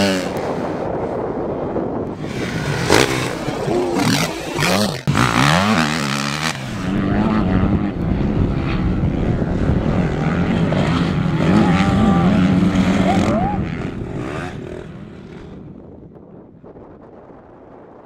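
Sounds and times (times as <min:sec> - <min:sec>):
motocross bike engine revving: 0:02.2 - 0:15.8.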